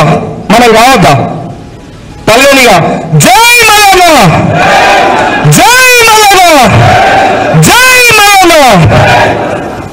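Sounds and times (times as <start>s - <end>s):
man shouting into microphone: 2.3s - 4.5s, 5.4s - 9.1s
crowd chanting: 4.5s - 5.5s, 6.6s - 7.6s, 8.8s - 9.9s.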